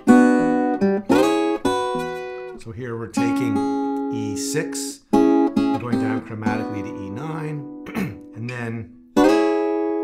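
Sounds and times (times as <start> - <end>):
acoustic guitar fingerstyle blues: 0.0 - 10.0.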